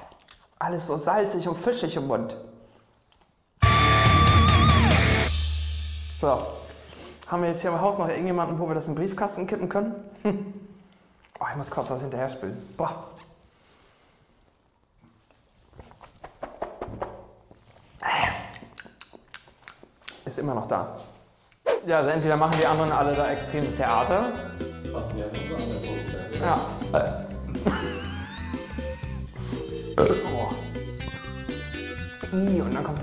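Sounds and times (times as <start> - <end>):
man gulping drink: 15.1 - 20.0.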